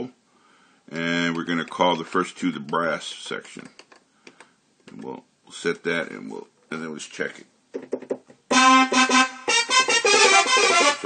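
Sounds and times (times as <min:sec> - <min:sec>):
synthesizer chord stabs: 0:08.5 - 0:11.0.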